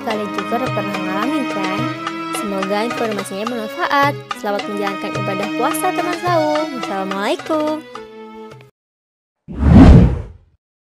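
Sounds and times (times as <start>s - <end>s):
deep rumbling whoosh: 9.5s - 10.3s.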